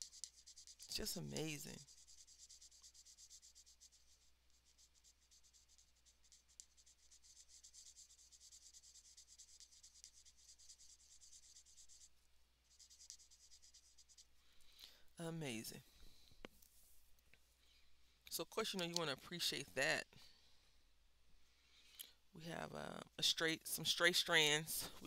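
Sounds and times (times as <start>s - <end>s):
marker scratching on paper: 0.0s - 14.4s.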